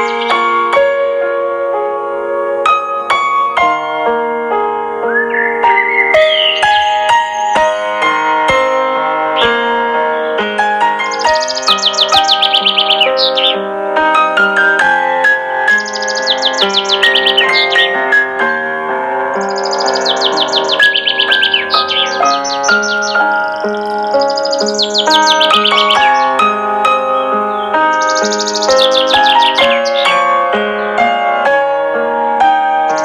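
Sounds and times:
birds chirping: 0.0s - 0.9s, 5.0s - 18.6s, 19.2s - 31.9s, 32.6s - 33.0s.

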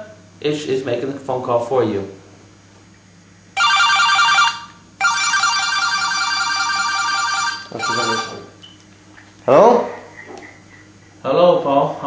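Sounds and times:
phone handset ringing: 3.6s - 8.5s.

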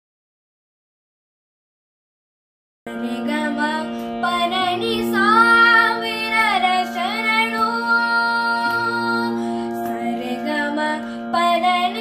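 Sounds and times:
boy singing ornamented melody: 2.9s - 12.0s
steady drone accompaniment: 2.9s - 12.0s.

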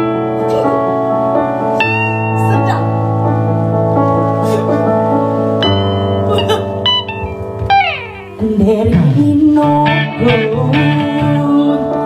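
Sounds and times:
held keyboard chord: 0.0s - 12.0s
plucked electric guitar notes: 1.8s - 4.0s, 5.6s - 12.0s.

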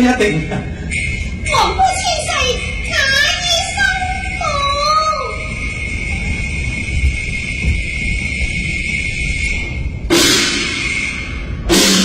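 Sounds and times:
low rumble: 0.0s - 12.0s
cymbal and gong crash: 9.6s - 12.0s.

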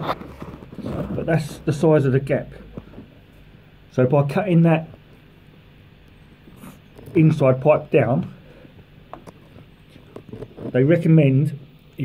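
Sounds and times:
faint steady background noise: 0.0s - 12.0s.

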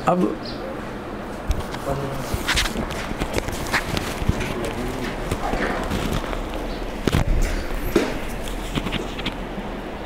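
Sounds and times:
microphone rubbing and clicking: 1.3s - 9.6s.

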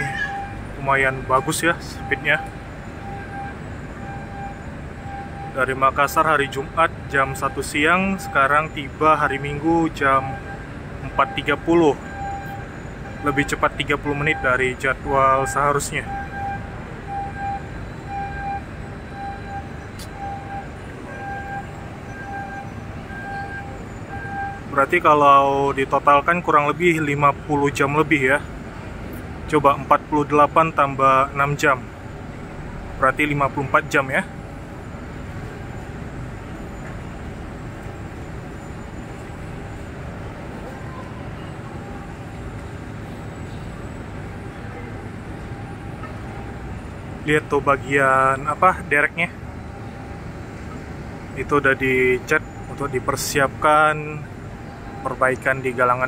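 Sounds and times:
electronic warning beeps: 0.0s - 25.6s, 33.1s - 56.0s
harbour background rush: 0.0s - 56.0s.

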